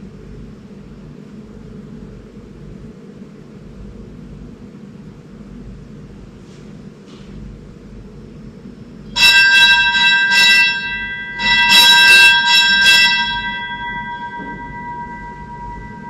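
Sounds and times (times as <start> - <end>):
bell ringing: 9.2 - 16.0.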